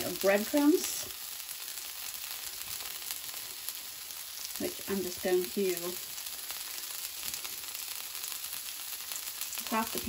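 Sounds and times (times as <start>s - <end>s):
fish frying in hot oil: 0.0s - 10.0s.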